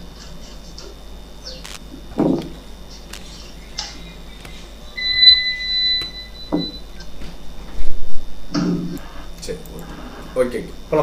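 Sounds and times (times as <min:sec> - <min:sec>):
high-pitched electronic beep: 0:04.9 - 0:06.9.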